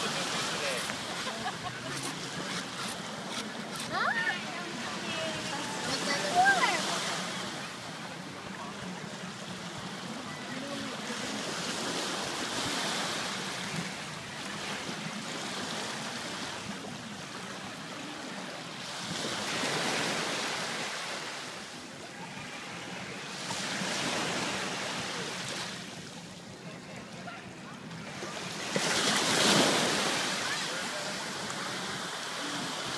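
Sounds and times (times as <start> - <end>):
waves breaking on sandy shore: 0.0 - 32.9.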